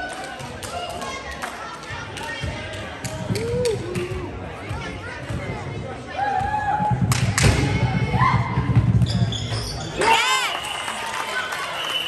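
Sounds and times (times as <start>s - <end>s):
spectators chattering: 0.0s - 12.0s
sneakers squeaking on court: 9.0s - 10.0s.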